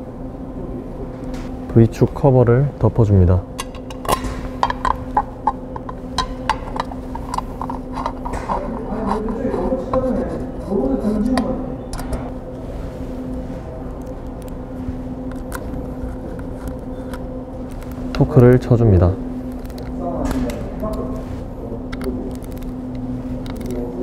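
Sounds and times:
steady hum: 0:00.0 - 0:24.0.

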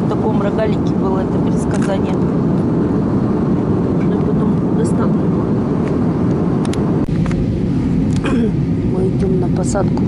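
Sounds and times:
jet engine cabin drone: 0:00.0 - 0:10.0.

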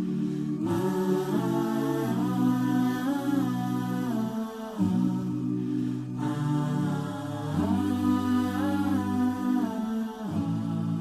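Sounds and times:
low vocal drone: 0:00.0 - 0:11.0
voices humming chords: 0:00.0 - 0:11.0.

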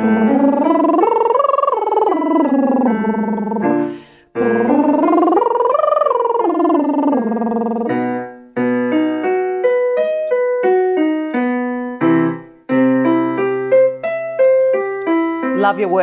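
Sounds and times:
sung lip trill: 0:00.0 - 0:03.8, 0:04.4 - 0:08.1
electronic keyboard arpeggio: 0:00.0 - 0:16.0.

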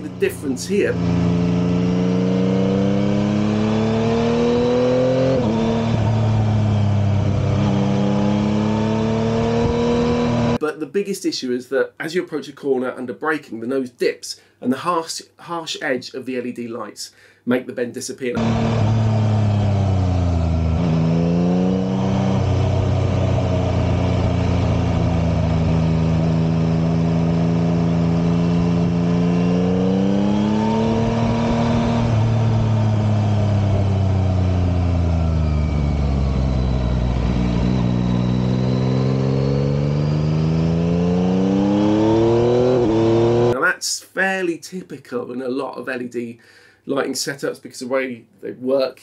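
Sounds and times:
motorcycle engine revving: 0:00.0 - 0:10.6, 0:18.4 - 0:43.6.

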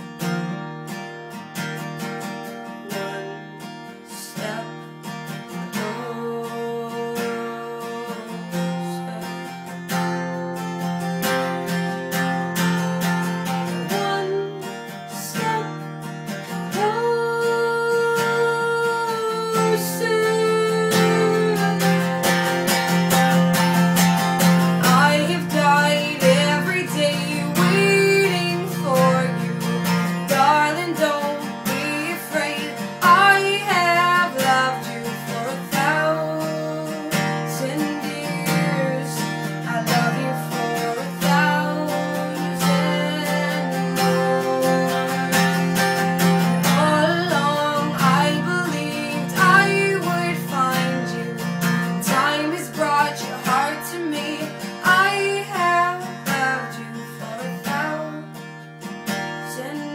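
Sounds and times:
acoustic guitar strumming: 0:00.0 - 0:59.9
woman singing a slow ballad: 0:02.6 - 0:10.4, 0:11.2 - 0:22.7, 0:24.6 - 0:59.9.

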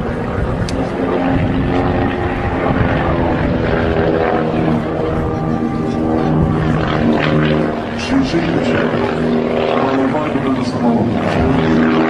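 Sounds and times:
small plane engine and propeller: 0:00.0 - 0:12.0.

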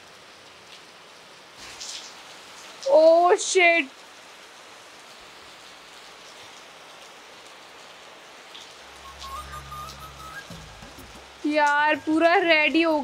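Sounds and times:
heavy rain hiss: 0:00.0 - 0:13.0
low musical tones: 0:09.0 - 0:12.8.

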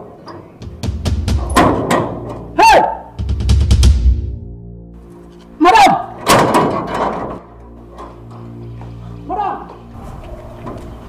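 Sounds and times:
low music bed: 0:00.0 - 0:11.0
metal gate bolt rattling: 0:06.1 - 0:08.4.

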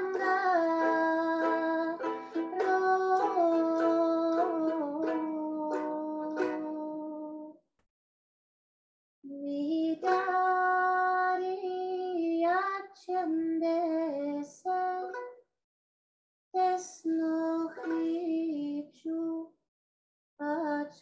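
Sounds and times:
woman singing: 0:00.0 - 0:07.6, 0:09.3 - 0:15.3, 0:16.6 - 0:19.5, 0:20.4 - 0:21.0.

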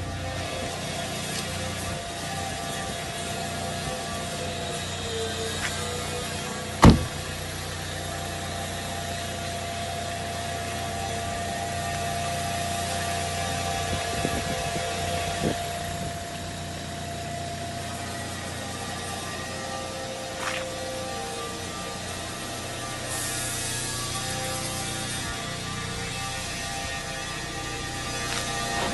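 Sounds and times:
diesel engine idling: 0:00.0 - 0:28.9
car door shutting: 0:06.8 - 0:07.3.

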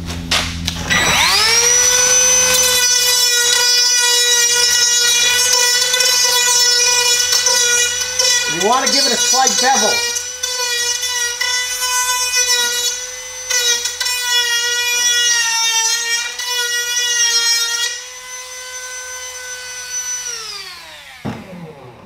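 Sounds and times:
rotary tool spinning down: 0:00.6 - 0:18.2
rotary tool grinding plastic: 0:00.6 - 0:21.6.

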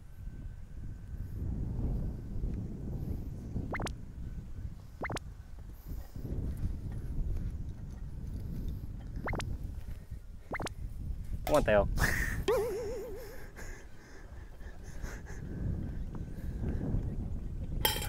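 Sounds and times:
wind rumbling on microphone: 0:00.0 - 0:18.0.

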